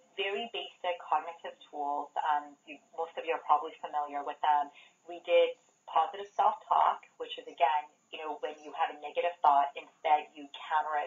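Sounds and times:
person talking over telephone: 7.4 - 11.0.

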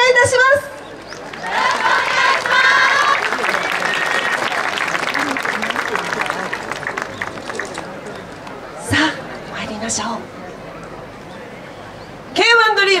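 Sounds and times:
voices calling out: 0.0 - 12.6
audience clapping: 1.0 - 8.6.

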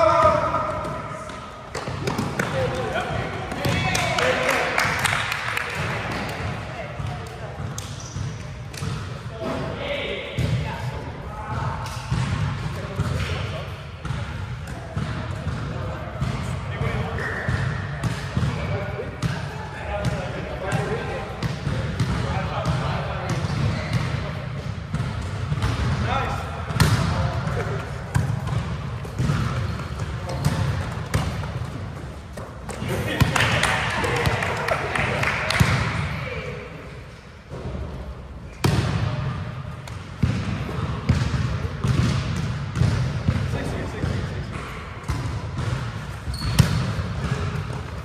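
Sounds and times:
volleyball hits and bounces: 0.2 - 9.7, 10.3 - 36.3, 38.5 - 48.0.

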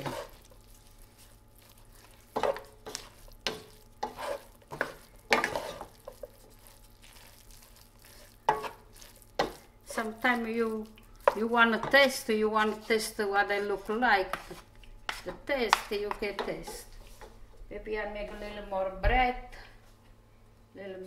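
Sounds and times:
wooden spoons scraping frying pan: 0.0 - 17.3.

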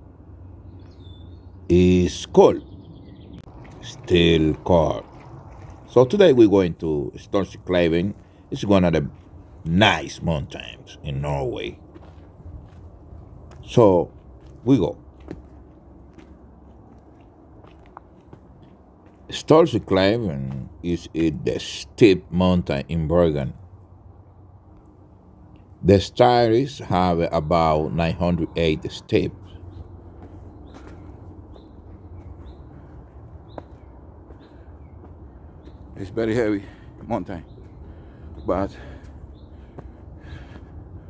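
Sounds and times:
bird chirping: 0.0 - 22.8, 26.6 - 40.7
low steady rumble: 0.0 - 41.0
footsteps on gritty stone path: 3.4 - 6.4, 8.1 - 10.1, 11.4 - 21.6, 29.8 - 40.7.

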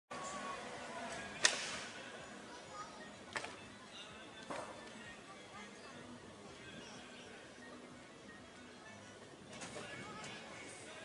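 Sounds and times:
faint outdoor background noise: 0.1 - 11.0.

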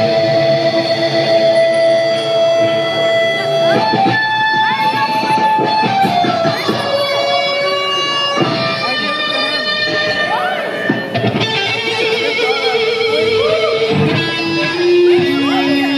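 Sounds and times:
electric guitar lead: 0.0 - 15.9.

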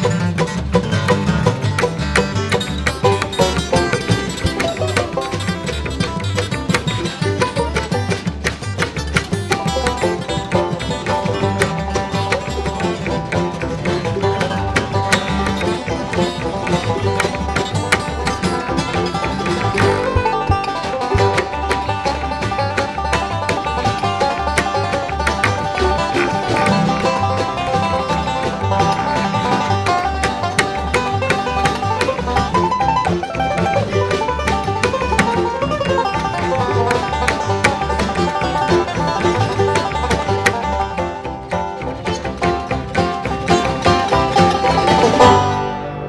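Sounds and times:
hand drum: 0.0 - 45.9
banjo picking: 0.0 - 46.0
bluegrass band playing: 0.0 - 46.0
mandolin picking: 0.0 - 46.0
upright bass pulse: 0.0 - 46.0.

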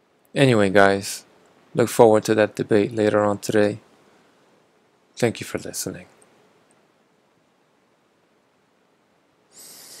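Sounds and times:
high-pitched hiss: 9.5 - 10.0.

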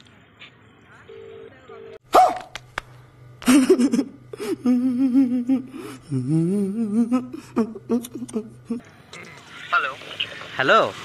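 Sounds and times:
man humming a tune: 4.3 - 8.8.

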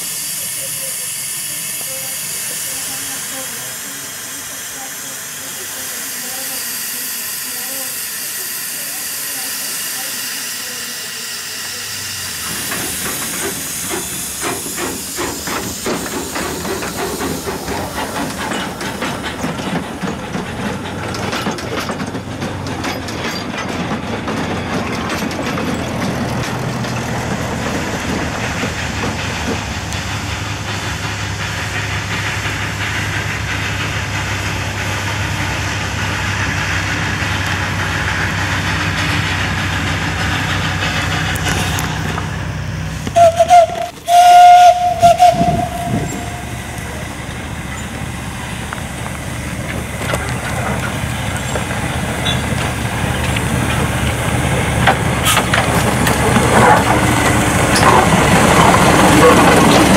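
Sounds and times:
small diesel locomotive humming: 0.0 - 59.9
train whistle blasts: 43.1 - 46.6.

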